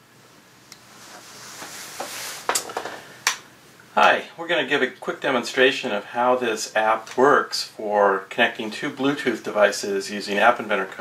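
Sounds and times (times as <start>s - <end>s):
tablet handling rustle: 1.0s - 3.0s.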